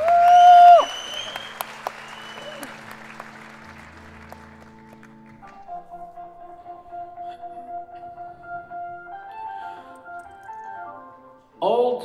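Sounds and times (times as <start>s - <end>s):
soft keyboard pad music: 2.0s - 12.0s.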